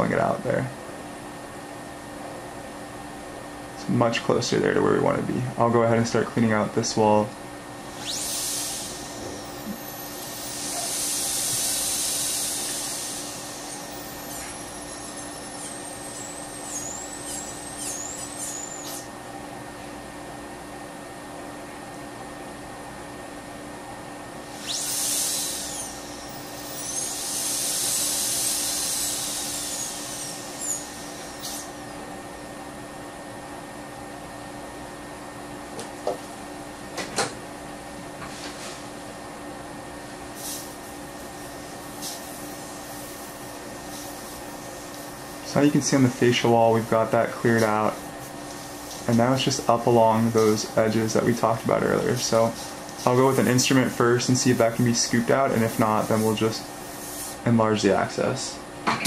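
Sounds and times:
steady low hum: 0:00.0 - 0:59.0
dental drill whine: 0:07.8 - 0:19.2, 0:24.4 - 0:32.0, 0:40.4 - 0:57.5.

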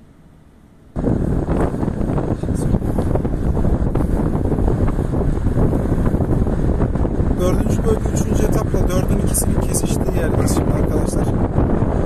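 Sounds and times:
road and engine rumble: 0:00.0 - 0:12.0
wind rushing over microphone: 0:00.9 - 0:12.0.

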